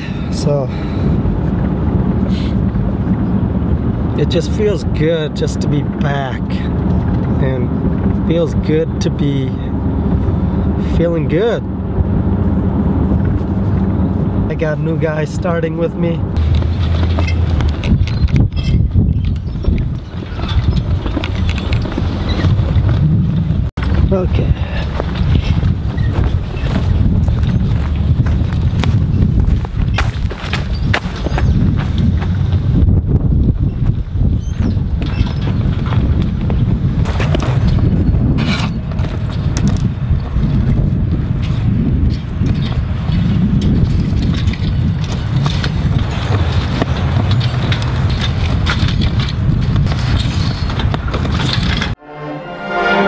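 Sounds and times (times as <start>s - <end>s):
wind buffeting microphone: 0.0s - 52.0s.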